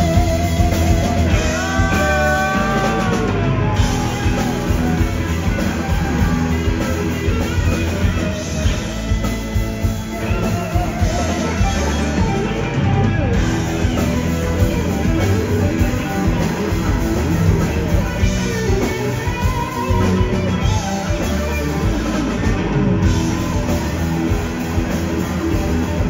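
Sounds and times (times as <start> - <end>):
drum kit: 0.0 - 26.0
electric bass: 0.0 - 26.0
electric guitar lead lines: 0.0 - 26.0.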